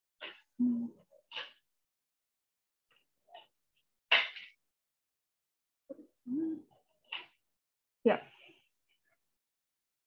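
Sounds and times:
person humming: 0.6 - 1.0, 6.3 - 6.6.

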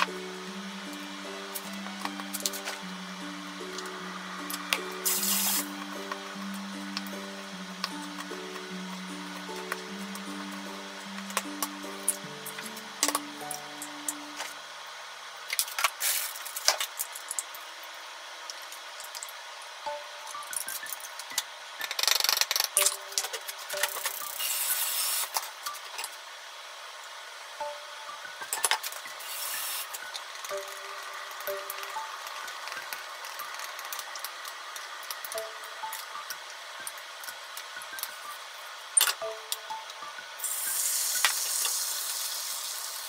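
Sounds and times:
background music: 0.0 - 14.8, 19.8 - 21.0, 21.8 - 24.4, 27.6 - 42.1
liquid poured hissing: 40.4 - 43.0.

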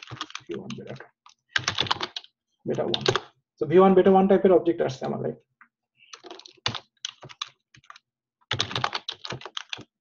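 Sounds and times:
typing on computer keyboard: 0.0 - 3.4, 6.1 - 10.0.

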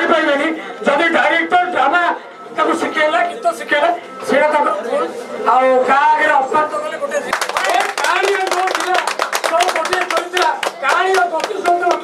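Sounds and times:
people clapping: 7.2 - 12.0.

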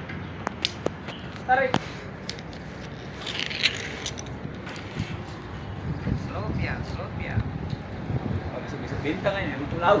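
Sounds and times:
outdoor background: 0.0 - 10.0
rope rasping: 2.2 - 5.3.

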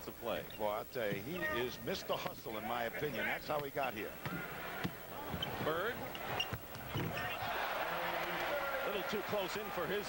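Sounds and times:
crowd noise: 2.5 - 10.0
sneakers squeaking: 4.2 - 7.5.

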